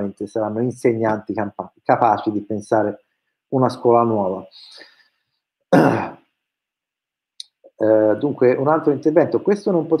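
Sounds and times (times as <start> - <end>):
man clearing throat cough: 5.7 - 6.2.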